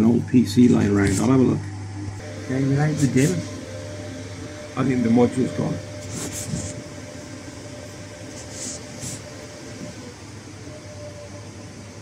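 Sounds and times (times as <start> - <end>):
cooling fans whirring: 0.0 - 12.0.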